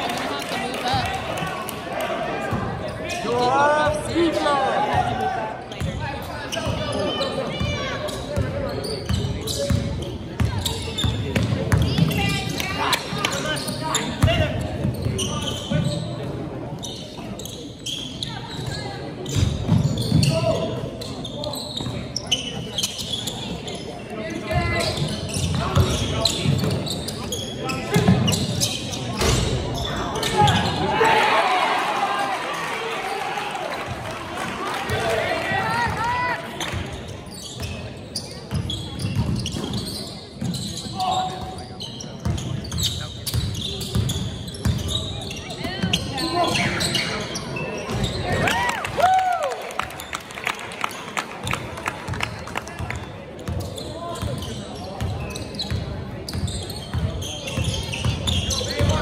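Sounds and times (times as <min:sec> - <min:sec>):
voices in a large gym: 0:00.0 - 0:59.0.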